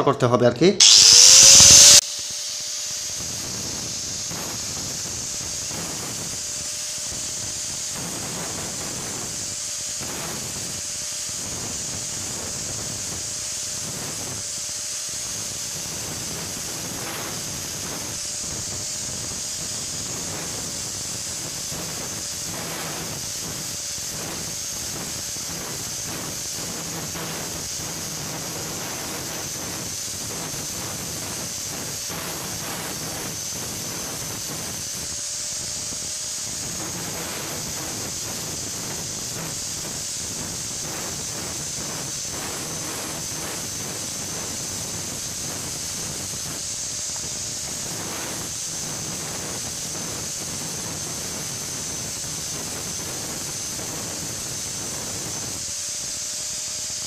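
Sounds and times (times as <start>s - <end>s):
angle grinder grinding metal: 0.8s - 49.6s.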